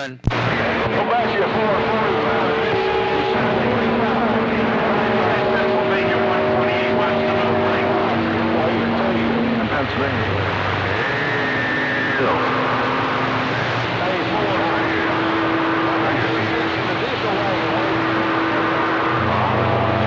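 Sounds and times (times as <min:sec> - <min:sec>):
faint garbled radio voices: 0:00.0 - 0:20.0.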